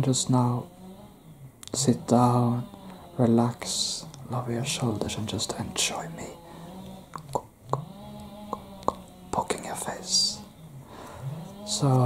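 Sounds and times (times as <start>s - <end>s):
whispered hiss: 0.0s - 0.8s, 1.5s - 12.0s
low steady hum: 0.0s - 12.0s.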